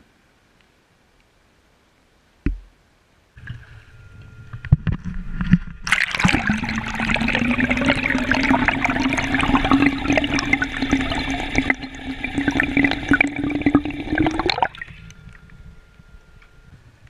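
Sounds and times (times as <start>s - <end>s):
crackle of bubbles: 3.4s - 16.5s
underwater propeller hum: 3.4s - 17.0s
rushing water: 5.9s - 15.1s.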